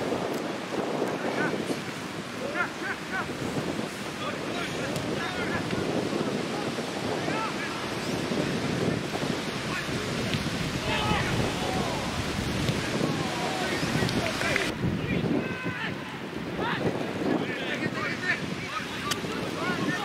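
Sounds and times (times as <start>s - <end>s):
wind buffeting microphone: 0.0s - 20.0s
distant shouts: 10.7s - 16.8s.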